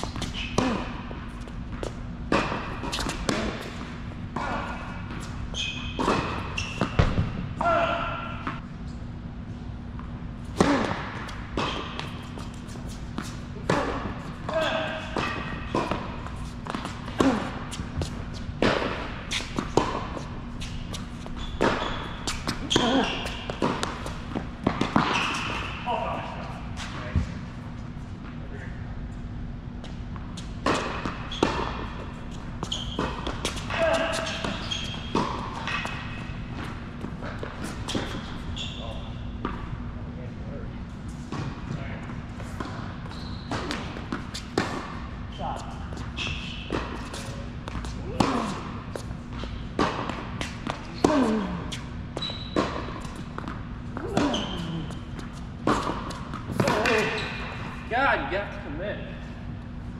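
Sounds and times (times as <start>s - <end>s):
shoe squeaks on court: 0.0s - 0.8s, 4.4s - 7.4s, 11.2s - 13.4s, 20.5s - 27.2s, 30.9s - 39.5s, 43.0s - 44.6s, 45.2s - 49.6s, 50.4s - 57.9s
tennis balls struck and bouncing: 0.0s - 5.3s, 5.9s - 8.6s, 10.0s - 27.3s, 29.8s - 38.5s, 41.3s - 57.8s
steady low hum: 0.0s - 59.9s.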